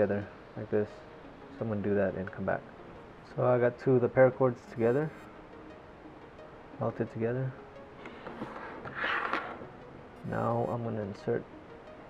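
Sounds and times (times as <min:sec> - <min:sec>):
cord rustling scrape on tabletop: 0:08.1 - 0:09.7.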